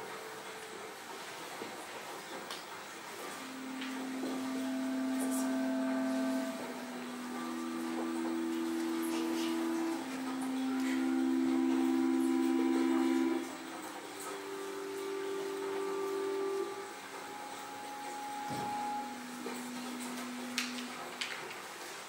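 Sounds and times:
steady held tones drone: 3.2 - 21.5.

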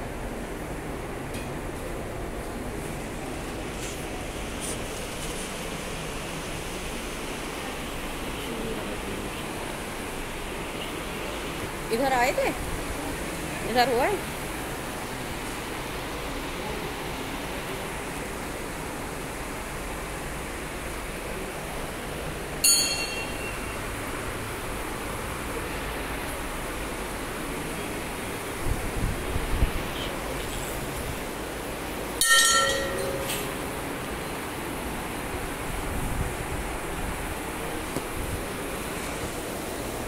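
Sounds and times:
fans running: 0.0 - 40.0
temple bell strike: 22.6 - 23.6, 32.2 - 33.5.

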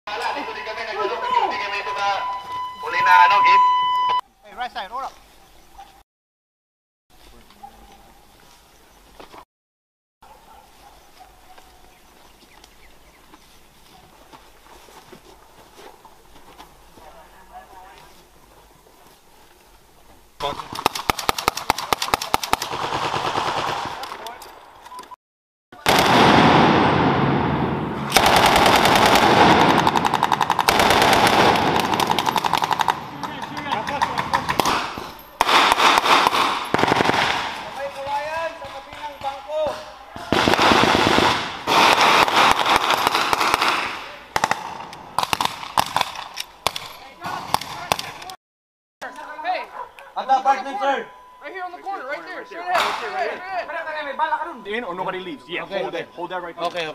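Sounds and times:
voices: 0.1 - 3.8, 16.9 - 19.8, 32.2 - 35.4, 49.0 - 56.9
rifles firing blanks: 20.4 - 25.0, 28.0 - 48.4.

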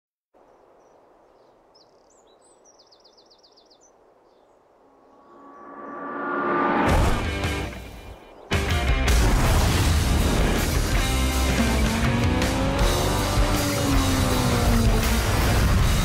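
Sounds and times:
bird chirping: 0.4 - 6.3
faint outdoor ambience: 0.4 - 9.1.

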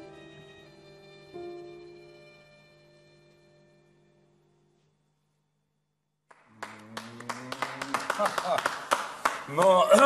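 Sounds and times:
audience applauding: 6.3 - 10.0.

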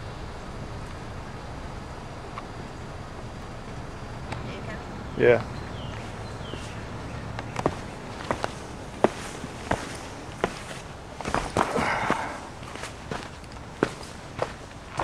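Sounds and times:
footsteps on dirt trail: 5.4 - 15.0
scuffing rustle: 5.8 - 15.0.

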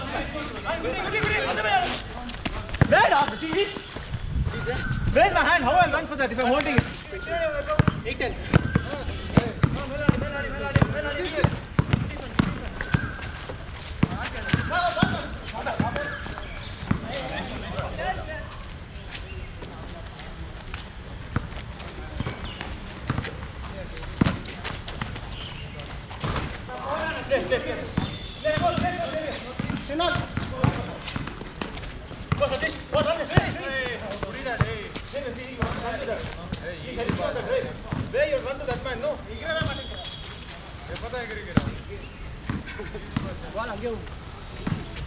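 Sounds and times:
basketball bouncing on concrete: 1.1 - 1.6, 2.4 - 4.1, 7.7 - 18.0, 21.3 - 23.5, 24.1 - 25.3, 27.9 - 36.2, 37.0 - 38.4, 39.5 - 40.0, 41.5 - 41.8, 42.4 - 43.5, 44.6 - 45.0.

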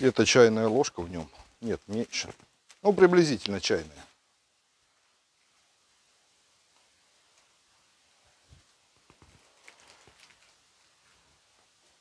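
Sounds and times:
paper sachet rustling: 9.2 - 10.6.

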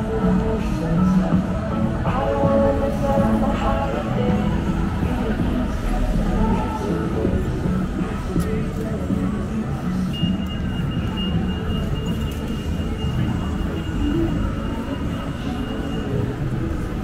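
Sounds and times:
city street traffic rumbling: 0.0 - 17.0.

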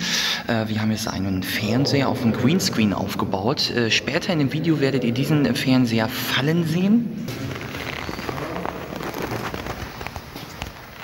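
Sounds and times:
sharp clicks and crackling: 7.3 - 11.0.

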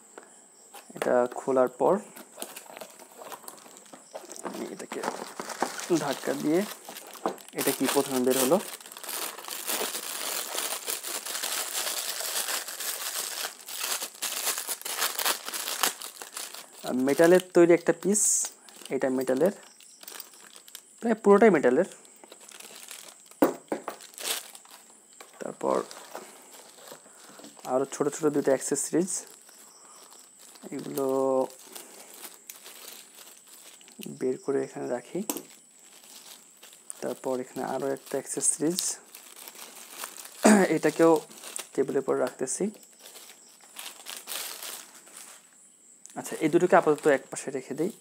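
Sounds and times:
plastic bag crinkling: 2.0 - 45.5, 46.1 - 48.0.

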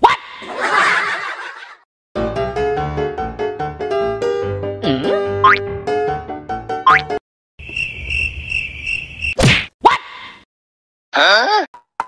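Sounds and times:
whistle-like glide: 7.6 - 9.4.

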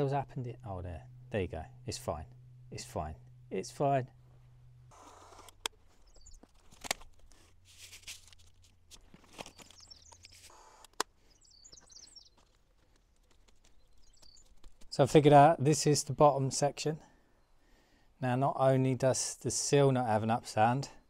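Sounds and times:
birds chirping: 0.0 - 6.6, 9.3 - 18.0.

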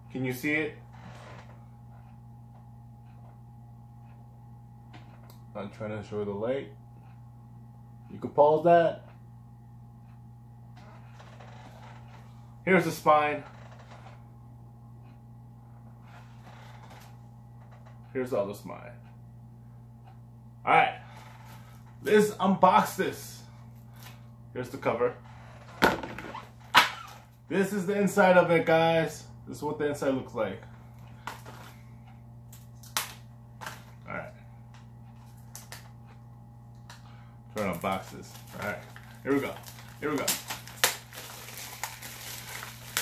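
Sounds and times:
steady low hum: 0.0 - 43.0.

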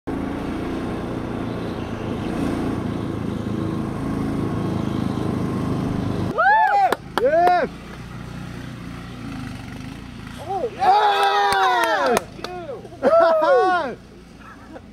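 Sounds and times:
outdoor background: 0.0 - 14.9
vehicle engine and road noise: 0.0 - 14.9
high whooping shouts: 6.3 - 7.7, 10.4 - 14.0.

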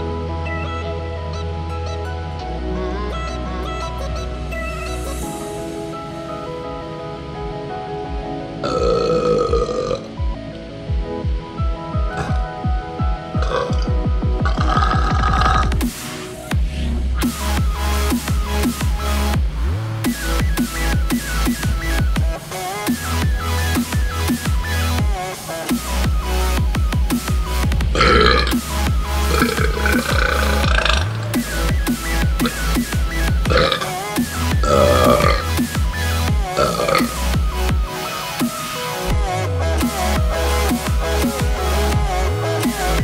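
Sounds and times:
electronic music with bass beat: 0.0 - 43.0
man burping loudly: 8.6 - 10.1, 12.1 - 12.6, 13.4 - 15.8, 28.0 - 28.6, 29.2 - 31.3, 33.5 - 35.6, 36.6 - 37.4.

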